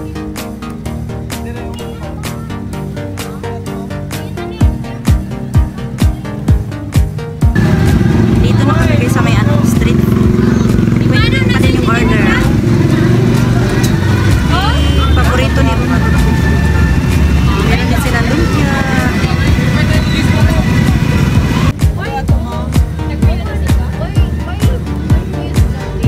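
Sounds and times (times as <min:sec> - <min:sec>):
crowd talking: 0:00.0 - 0:26.0
motor vehicle engines running: 0:00.0 - 0:26.0.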